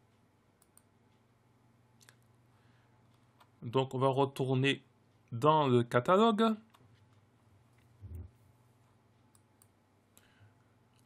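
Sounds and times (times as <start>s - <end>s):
computer mouse clicks: 0.6s - 0.9s, 9.3s - 10.3s.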